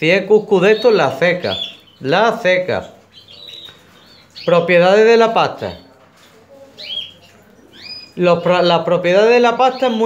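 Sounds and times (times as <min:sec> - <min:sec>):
canary chirps: 0:00.0 - 0:10.0.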